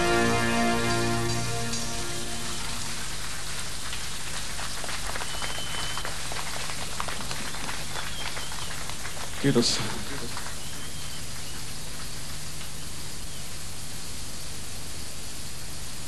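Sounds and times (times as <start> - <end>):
sustained keyboard chord: 0.0 - 3.2
studio audience applauding: 0.0 - 12.2.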